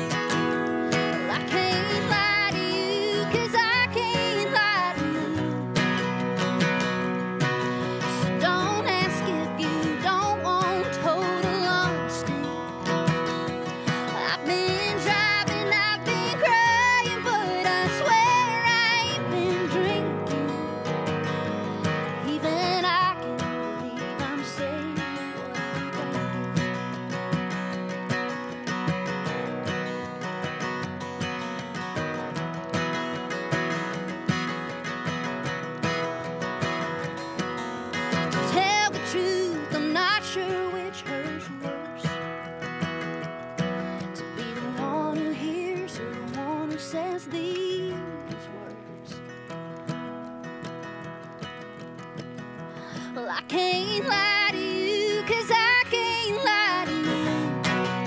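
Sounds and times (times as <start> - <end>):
woman singing: 0.0 - 28.0, 36.8 - 49.9, 52.8 - 58.0
acoustic guitars strumming: 0.0 - 58.0.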